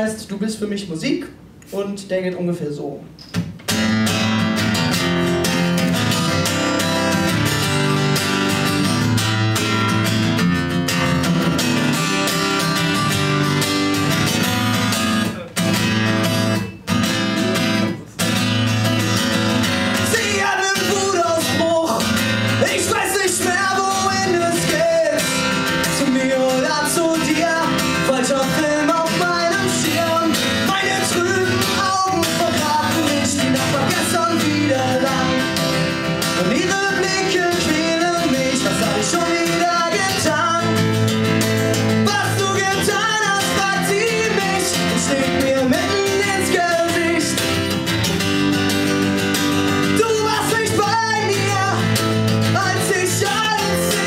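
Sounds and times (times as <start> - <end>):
acoustic guitar strumming: 3.3 - 54.0
man singing: 19.8 - 47.8, 49.7 - 54.0.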